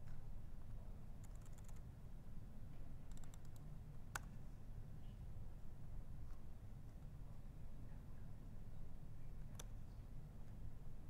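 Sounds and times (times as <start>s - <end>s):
low steady hum: 0.0s - 11.0s
computer keyboard typing: 1.2s - 1.8s, 3.1s - 3.6s.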